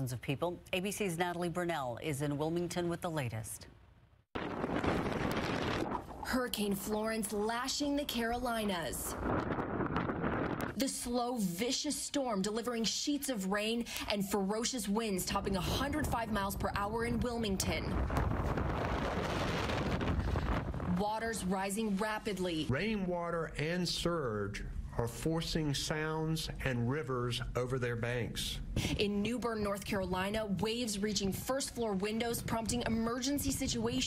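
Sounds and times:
wind buffeting microphone: 4.4s - 6.3s, 8.3s - 10.8s, 15.3s - 21.4s.

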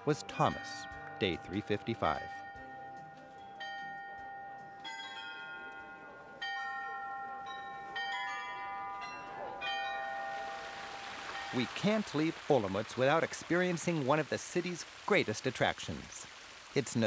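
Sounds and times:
clock bells chiming a slow tune: 0.0s - 10.8s.

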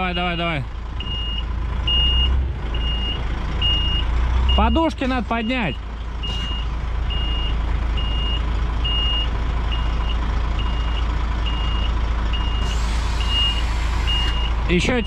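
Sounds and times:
reversing alarm beeping: 0.0s - 14.6s
diesel truck idling: 0.0s - 15.0s
air suspension hiss: 12.6s - 14.1s.

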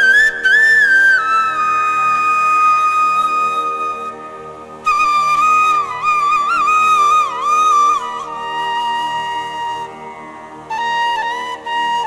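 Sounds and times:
flute melody: 0.0s - 12.0s
steady drone: 0.0s - 12.0s.

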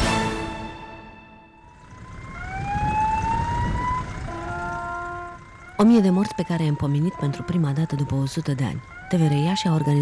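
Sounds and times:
passing train rumble: 1.6s - 10.0s
train horn blasts: 4.2s - 5.5s.

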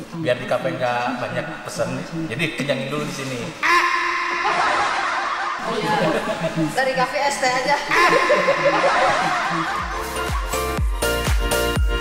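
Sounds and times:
background music: 3.6s - 12.0s
people laughing and chuckling: 3.7s - 7.0s, 7.6s - 10.6s.

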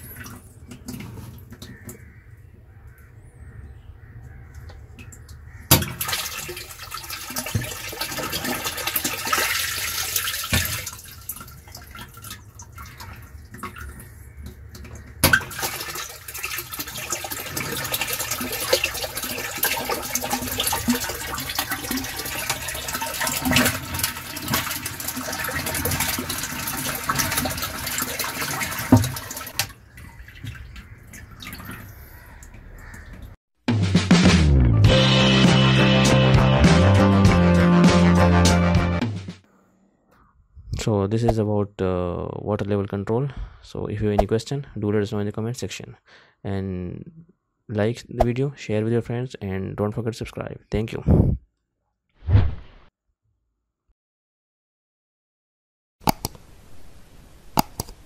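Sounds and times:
water gushing into a plastic tank: 5.7s - 33.1s.

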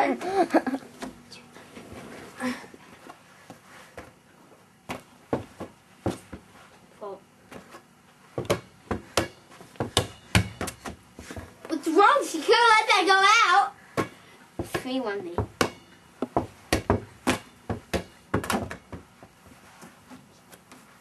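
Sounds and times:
ball bouncing and slapped by hand: 4.8s - 6.5s, 7.5s - 11.5s, 14.0s - 19.4s.

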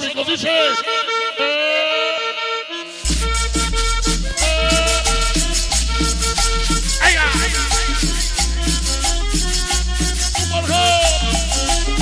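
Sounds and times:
accordion melody: 0.0s - 12.0s.

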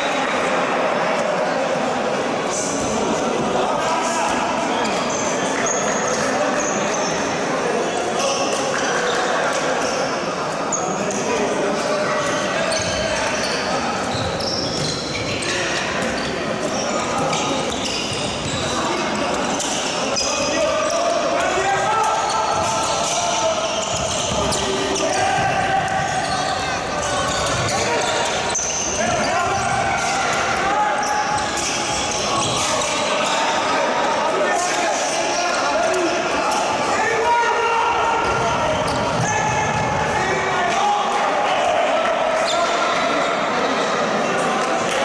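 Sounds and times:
players shouting: 12.3s - 45.0s.

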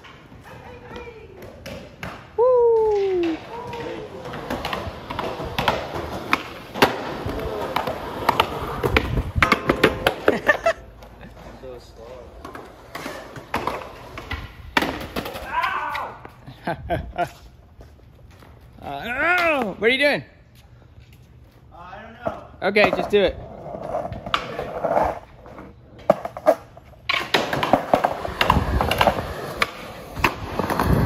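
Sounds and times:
skateboard clacking on ground: 0.0s - 16.3s, 22.2s - 31.0s
skateboard wheels rolling on concrete: 0.0s - 31.0s.

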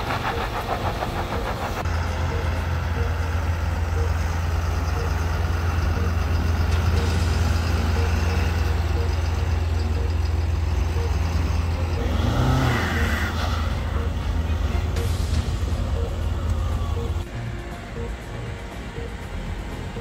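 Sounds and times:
diesel engine deep rumble: 0.0s - 20.0s
pulsing vehicle sound: 0.0s - 20.0s.

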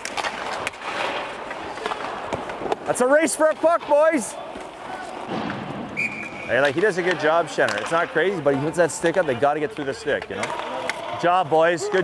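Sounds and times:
skates scraping on ice: 0.0s - 5.4s
sticks and puck clacking: 0.0s - 5.6s, 6.5s - 12.0s.

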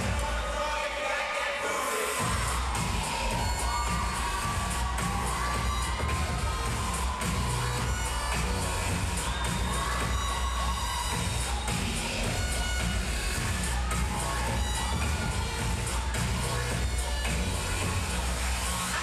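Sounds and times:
audience cheering and shouting: 0.0s - 19.0s
hip-hop dance music: 0.0s - 19.0s.

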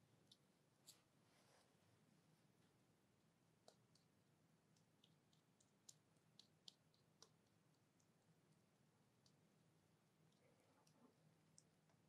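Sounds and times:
sticky clicks of cream: 3.6s - 9.4s.

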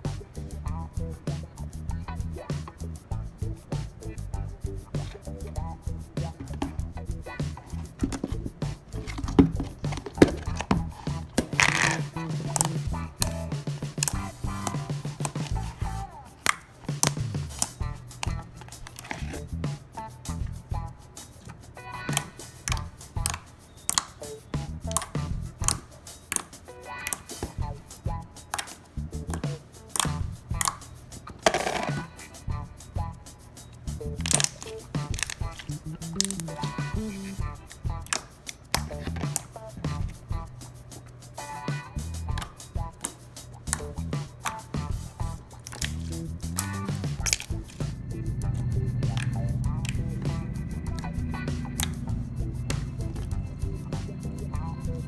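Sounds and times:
background music: 0.0s - 55.0s
sharp wet pops: 4.9s - 20.0s, 21.4s - 32.1s, 33.8s - 40.5s, 41.4s - 54.2s
slime squishing: 34.2s - 37.4s, 44.8s - 47.9s.

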